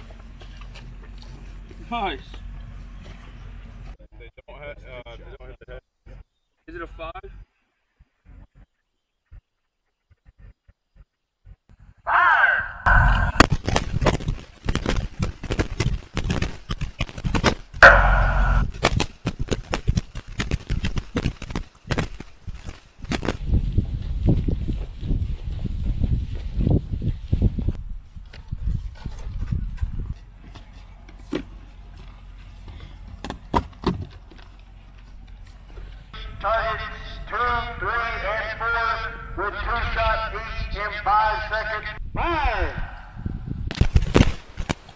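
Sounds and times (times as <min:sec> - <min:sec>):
rifle and pistol shots: 0:17.8 - 0:18.9.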